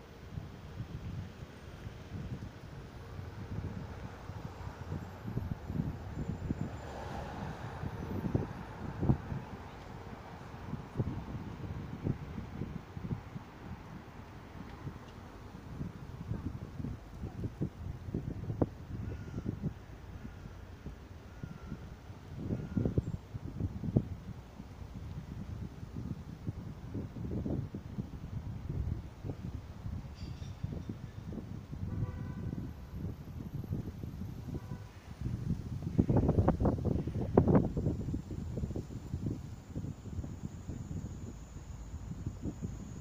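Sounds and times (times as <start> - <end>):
city street traffic: 0.0 - 43.0
wind buffeting microphone: 0.0 - 43.0.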